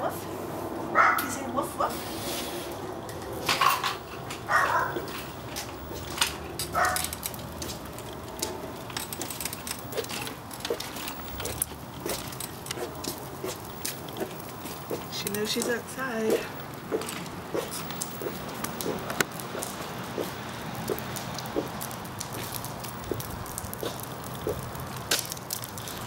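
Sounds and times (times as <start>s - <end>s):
stroller rolling on concrete: 0.0s - 26.0s
dogs barking: 0.9s - 1.4s, 4.4s - 5.2s, 6.6s - 7.2s.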